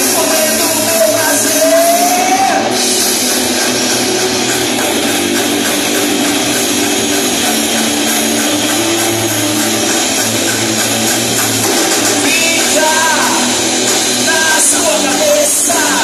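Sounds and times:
distorted electric guitar: 0.0 - 16.0
drum kit: 0.0 - 16.0
electric bass: 0.0 - 16.0.

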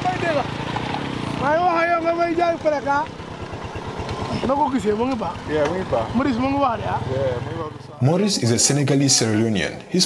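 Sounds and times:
motorcycle engine pulsing: 0.0 - 8.0.

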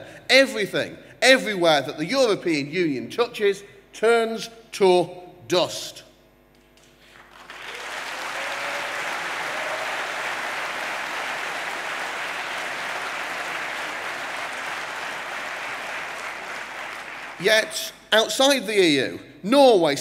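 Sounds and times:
large audience applauding: 7.0 - 17.4.

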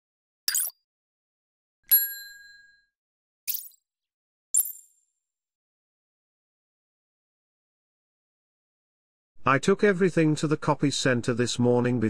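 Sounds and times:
bell-like notification ding: 1.9 - 2.9.

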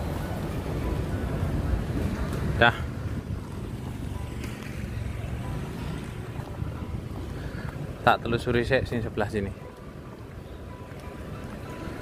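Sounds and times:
street traffic rumble: 0.0 - 12.0
wind buffeting microphone: 0.0 - 12.0.

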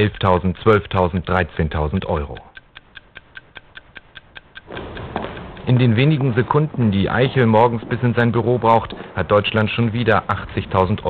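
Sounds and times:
clock ticking quickly: 0.0 - 11.0.

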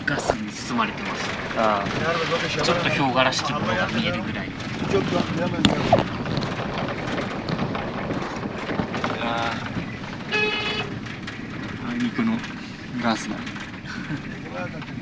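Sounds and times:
vehicle rumbling over gravel: 0.0 - 15.0.

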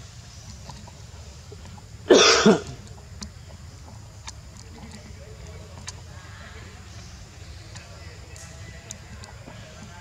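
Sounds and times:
loud harsh cough: 2.1 - 2.8.

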